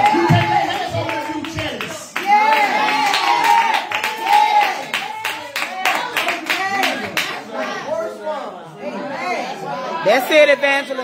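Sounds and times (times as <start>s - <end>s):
congregation clapping: 0.0s - 7.5s.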